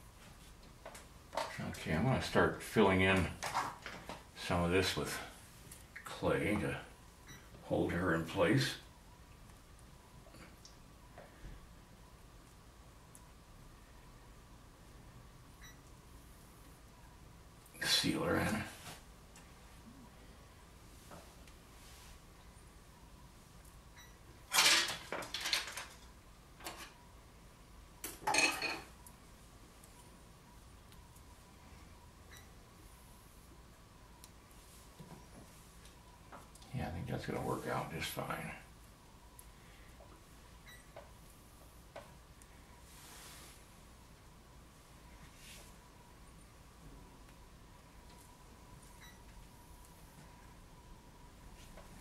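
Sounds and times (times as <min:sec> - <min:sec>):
faint high whine: 0:04.3 - 0:24.9.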